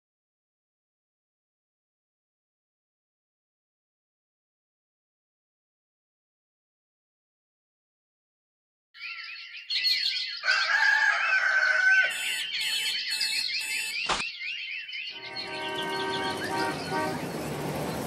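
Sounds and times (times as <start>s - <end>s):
birds chirping: 9.0s - 18.0s
alarm clock beeping: 12.1s - 14.1s
car horns: 15.2s - 18.0s
city traffic noise: 15.2s - 18.0s.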